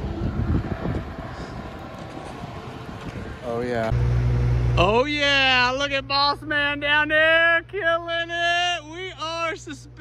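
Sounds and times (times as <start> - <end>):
wind buffeting microphone: 0.0 - 3.9
engine low rumble: 0.0 - 10.0.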